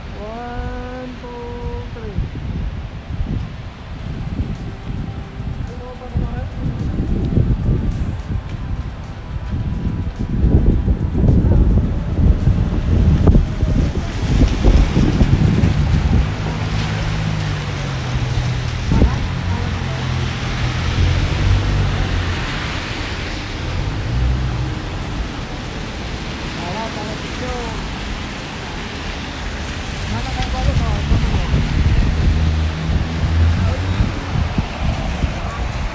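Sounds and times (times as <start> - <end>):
wind buffeting microphone: 0.0 - 35.9
background music with bass line: 3.2 - 25.7, 29.8 - 35.9.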